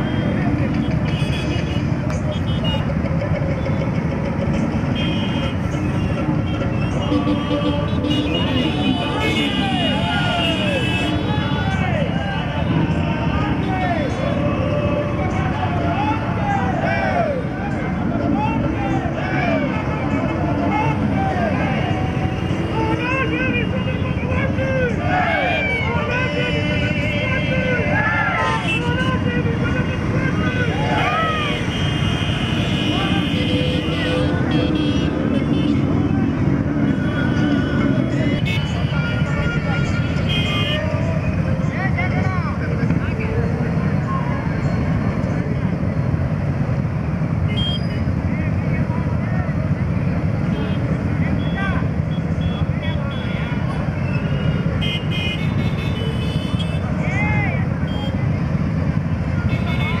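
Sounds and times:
motorcycle engines rumbling: 0:00.0 - 1:00.0
voices shouting: 0:06.4 - 0:42.4.

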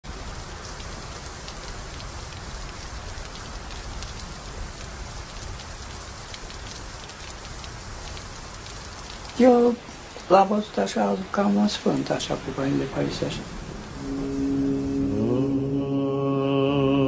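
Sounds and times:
steady rain: 0:00.0 - 0:17.0.

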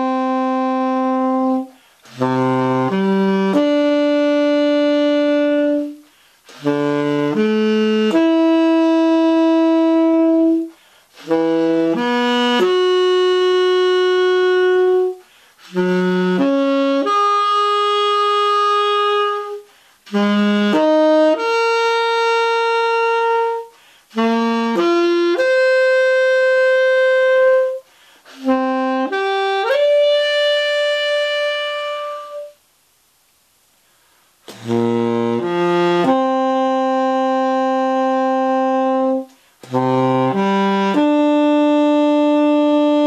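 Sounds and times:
tenor saxophone playing solo: 0:00.0 - 0:32.6, 0:34.5 - 0:43.0.

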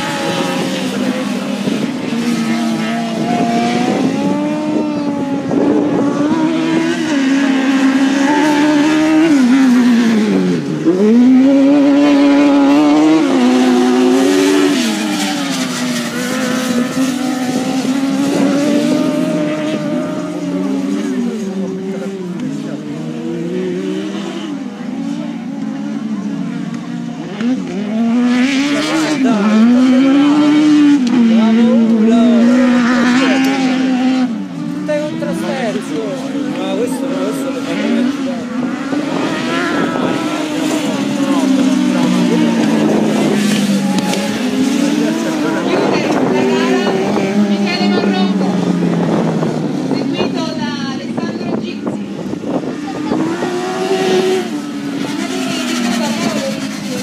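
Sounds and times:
race car engines revving: 0:00.0 - 0:57.0.

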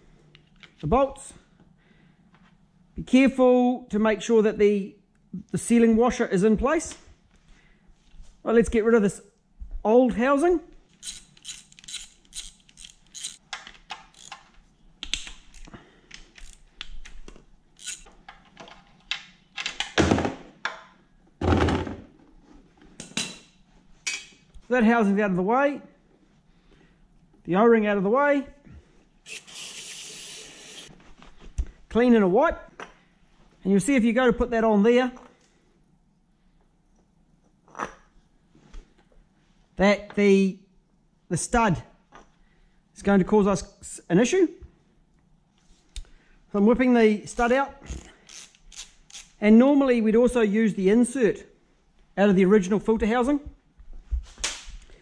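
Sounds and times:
socket ratchet clicking: 0:11.0 - 0:14.4, 0:17.8 - 0:18.1, 0:48.0 - 0:49.4.

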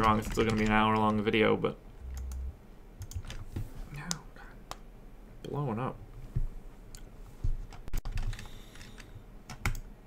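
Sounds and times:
keyboard and mouse clicks: 0:00.0 - 0:01.2, 0:02.0 - 0:04.8, 0:06.9 - 0:09.9.

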